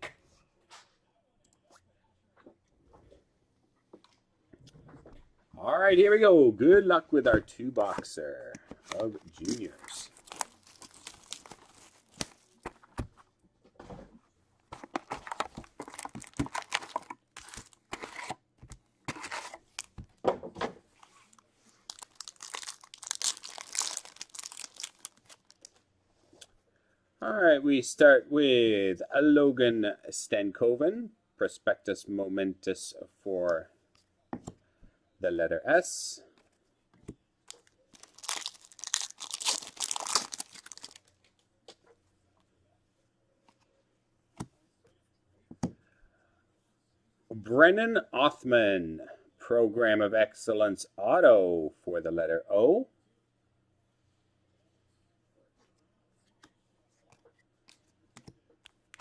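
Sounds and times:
plastic wrappers crinkling and tearing: 8.8s - 13.1s, 14.8s - 18.3s, 19.1s - 20.0s, 21.2s - 25.8s, 37.5s - 41.2s.

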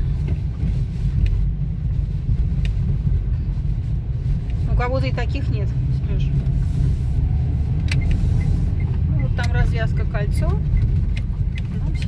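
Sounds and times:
car driving over rough asphalt: 0.0s - 12.0s.

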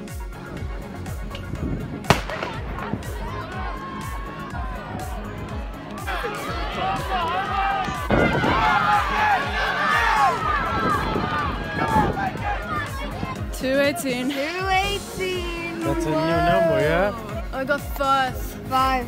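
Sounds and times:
starter's pistol firing: 2.1s - 2.7s
spectators yelling and cheering: 2.1s - 13.9s.

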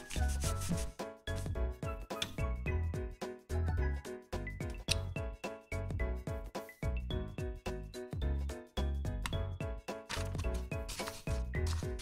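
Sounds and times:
fingertips rubbing paper sticker: 0.0s - 1.0s, 10.1s - 12.0s
background music with steady beat: 0.0s - 12.0s.

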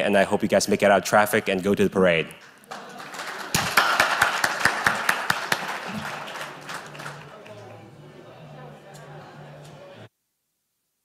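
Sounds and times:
audience applauding: 2.4s - 8.4s.

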